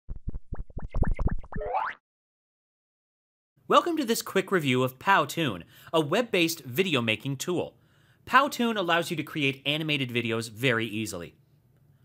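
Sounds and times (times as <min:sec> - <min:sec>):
rising pitch sweep: 0:00.5 - 0:02.0.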